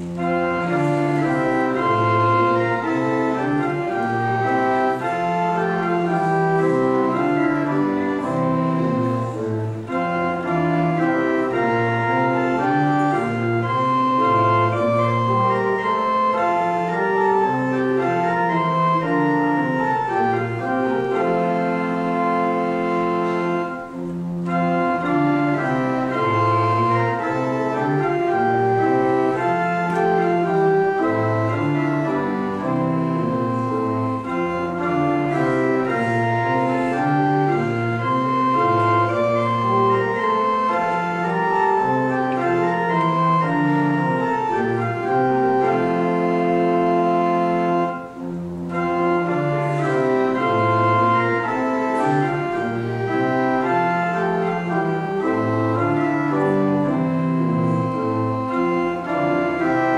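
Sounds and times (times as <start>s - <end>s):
pipe organ playing a hymn: 0.0s - 59.9s.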